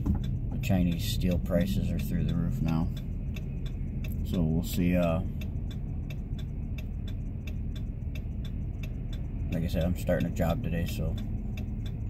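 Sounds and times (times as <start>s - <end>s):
steady ticking: 0.0s - 12.0s
truck engine idling: 0.0s - 12.0s.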